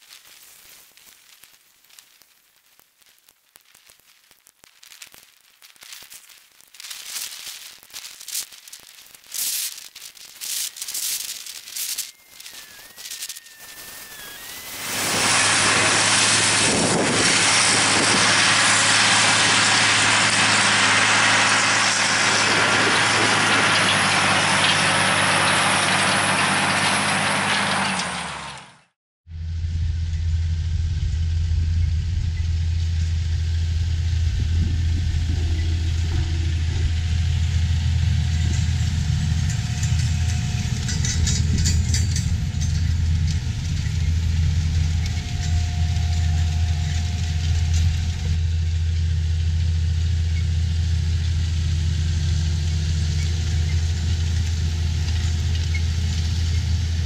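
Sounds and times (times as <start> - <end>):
wind on microphone: 14.1 - 24.0, 33.8 - 37.8
tractor engine running: 14.5 - 57.0.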